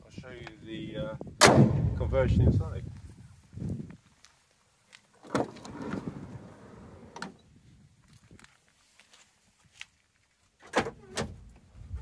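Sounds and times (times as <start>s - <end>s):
sliding van door rolling: 5.3s - 7.3s.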